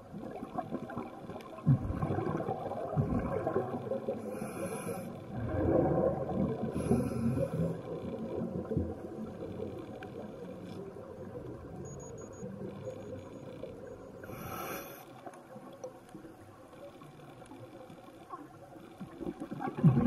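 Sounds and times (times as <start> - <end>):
bubbling exhaled breath underwater: 0.3 - 8.7, 19.4 - 20.0
hissing regulator inhalations: 14.2 - 15.2.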